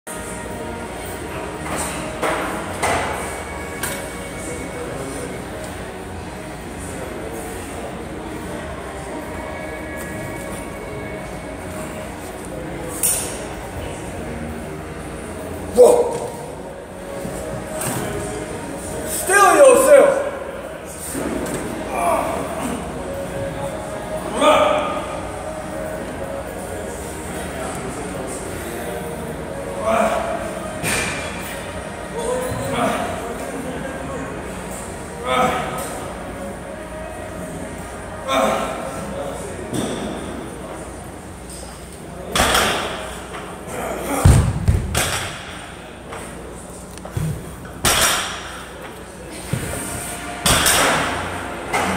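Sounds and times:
gym room noise: 0:00.1 - 0:51.9.

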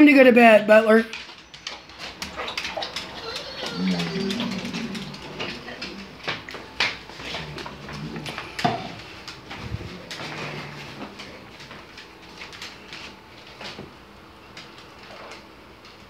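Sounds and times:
claws and paws scuffling on wood: 0:01.0 - 0:13.8
low animal vocal sounds: 0:01.6 - 0:11.9.

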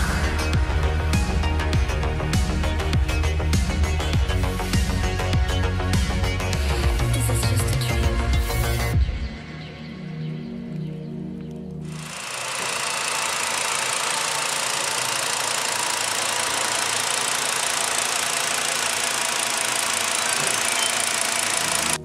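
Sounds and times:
car engine idling: 0:12.2 - 0:22.0.

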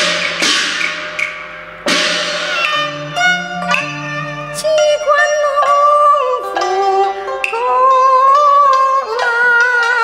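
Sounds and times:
loud ringing percussion strikes: 0:00.0 - 0:04.5
held instrumental note: 0:00.0 - 0:05.8
wood-block clicks: 0:00.2 - 0:01.4, 0:03.6 - 0:04.0.

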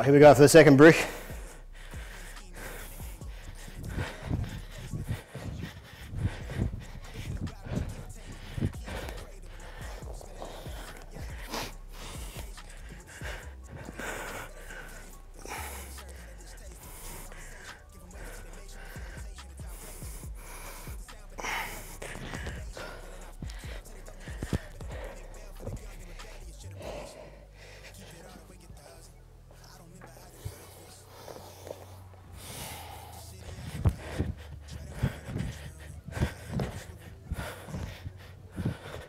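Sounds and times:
background music: 0:00.0 - 0:39.0
man breathing hard and gasping: 0:00.2 - 0:39.0.

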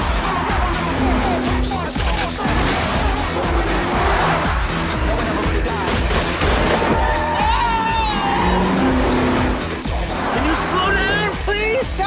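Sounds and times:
action trailer music: 0:00.0 - 0:12.0
cars racing at speed: 0:00.0 - 0:12.0.

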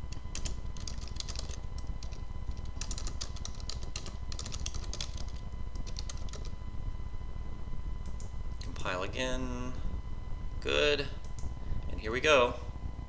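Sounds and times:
faint steady hum: 0:00.0 - 0:13.0
computer keyboard typing: 0:00.1 - 0:06.6.

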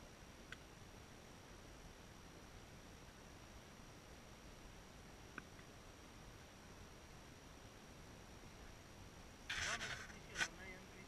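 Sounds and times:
person speaking close to microphone: 0:09.5 - 0:11.0.

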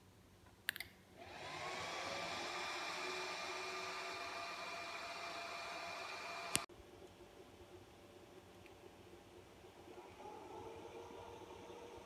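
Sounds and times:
cooling fans whirring: 0:01.2 - 0:06.7, 0:07.4 - 0:12.0.

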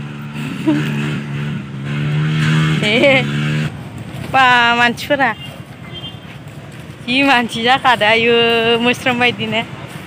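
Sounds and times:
engine drone: 0:00.0 - 0:10.0
voice: 0:02.8 - 0:03.3, 0:04.3 - 0:05.4, 0:07.1 - 0:09.7.

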